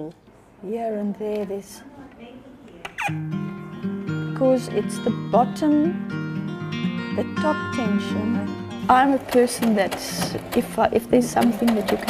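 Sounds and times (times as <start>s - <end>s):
acoustic guitar music: 3.0s - 12.0s.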